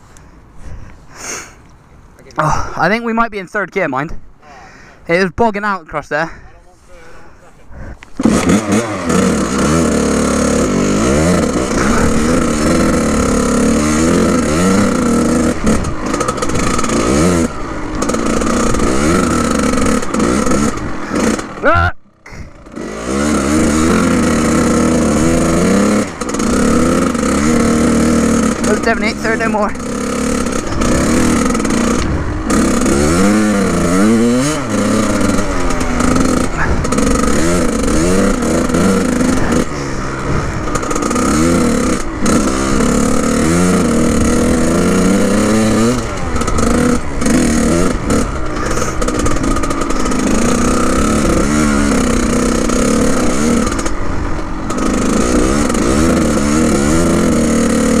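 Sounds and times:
dirt bike engine revving: 7.7 - 58.0.

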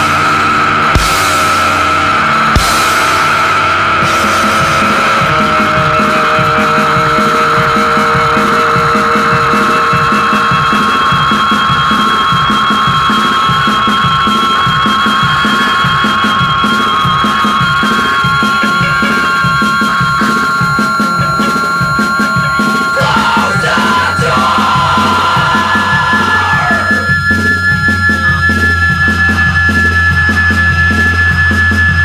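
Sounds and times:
driving rhythm section: 0.0 - 32.0
ringing guitar notes: 0.0 - 32.0.

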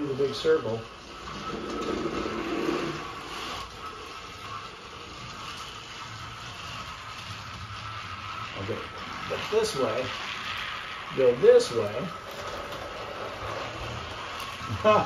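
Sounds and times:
toy train motor whirring: 0.0 - 15.0.

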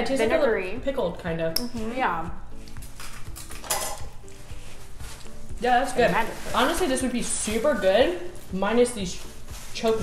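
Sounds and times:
faint background music: 0.0 - 10.0
plates and cutlery clinking: 2.8 - 4.5
rustle or scrape: 6.1 - 7.9.

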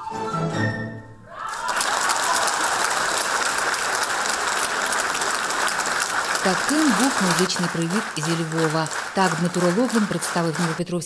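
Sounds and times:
orchestra and pan flute: 0.0 - 1.8
audience applauding: 1.4 - 11.0.

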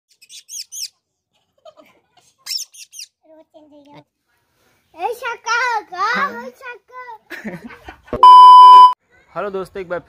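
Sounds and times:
small bird chirping: 0.1 - 1.0.

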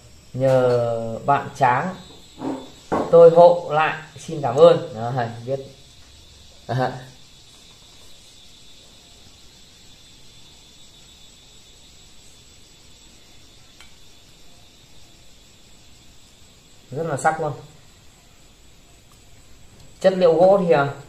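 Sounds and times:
high-pitched insect chirring: 0.0 - 21.0.

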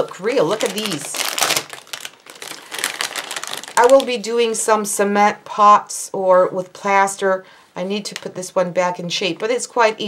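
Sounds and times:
plastic packaging crinkling: 0.0 - 4.7.

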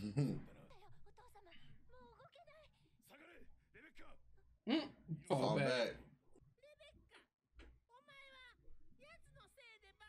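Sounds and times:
faint dialogue: 0.0 - 10.0.

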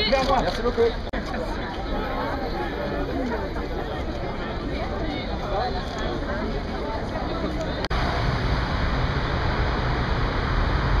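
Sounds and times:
rushing outdoor noise: 0.0 - 11.0
deep low rumble: 7.9 - 11.0.

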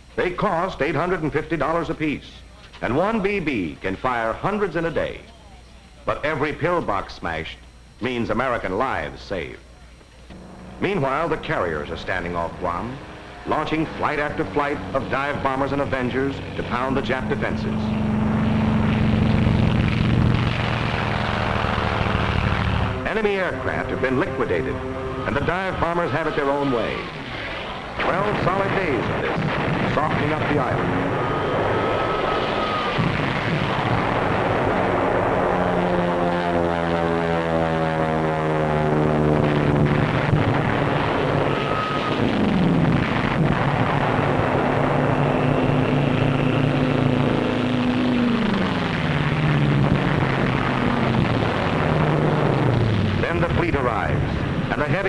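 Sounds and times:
propeller engine droning: 0.0 - 55.0
explosion thumps: 27.3 - 31.7, 32.5 - 35.4, 39.4 - 45.2.

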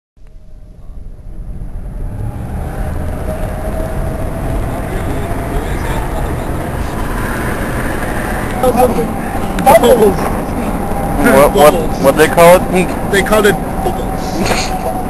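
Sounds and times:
road and engine rumble in car: 0.2 - 15.0
faint voices: 4.2 - 15.0.

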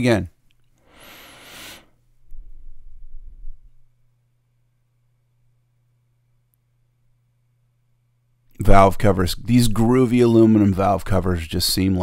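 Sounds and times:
faint low hum: 0.0 - 12.0
breathy hiss: 0.8 - 2.0.

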